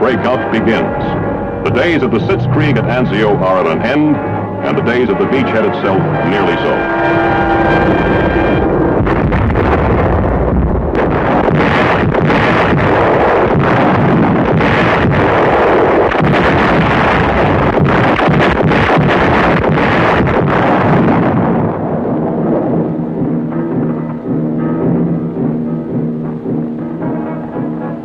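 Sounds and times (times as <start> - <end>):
orchestral music: 0.0 - 9.1
shells bursting: 0.0 - 24.8
artillery guns firing: 8.9 - 22.7.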